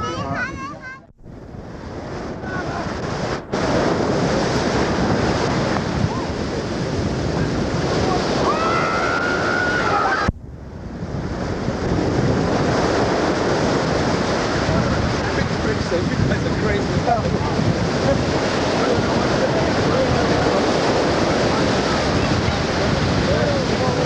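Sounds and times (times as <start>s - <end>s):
ocean surf breaking: 0.0s - 24.0s
wind buffeting microphone: 0.0s - 24.0s.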